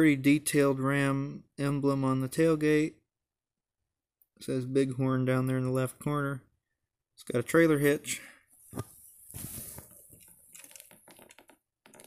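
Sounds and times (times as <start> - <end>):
soft handling rustle: 8.6 - 11.3.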